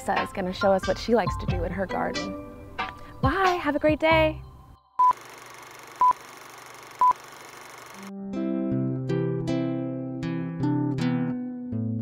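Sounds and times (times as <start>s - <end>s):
short high beeps: 6.0s - 6.2s, 7.0s - 7.2s.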